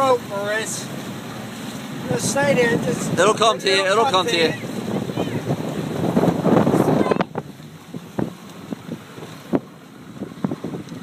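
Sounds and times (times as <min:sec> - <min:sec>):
wind buffeting microphone: 0:00.9 - 0:11.0.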